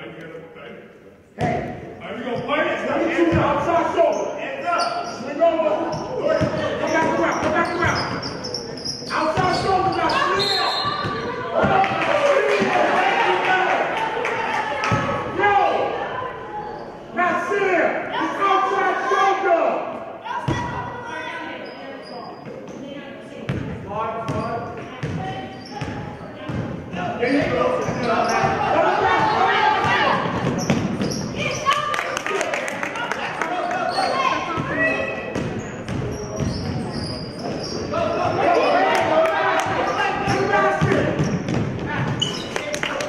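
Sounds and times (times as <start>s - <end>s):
voices calling and shouting: 1.4s - 43.0s.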